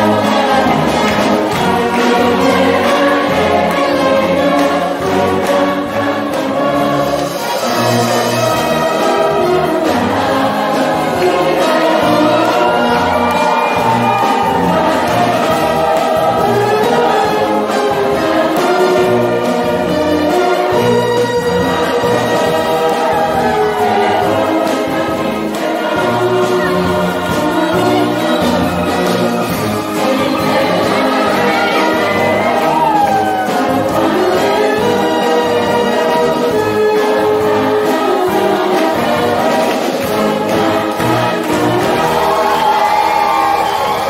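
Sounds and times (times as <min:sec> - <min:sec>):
brass band playing: 0:00.0 - 0:44.0
mixed choir singing: 0:00.0 - 0:44.0.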